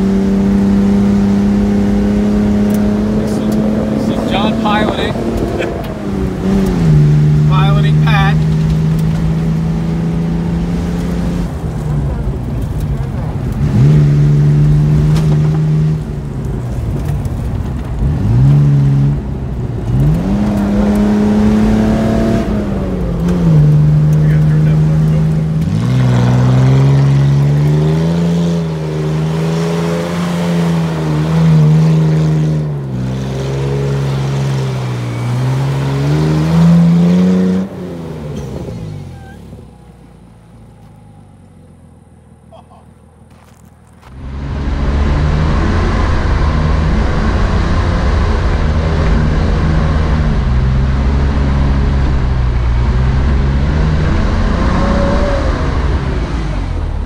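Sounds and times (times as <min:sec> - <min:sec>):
engine revving off road: 0:00.0 - 0:57.0.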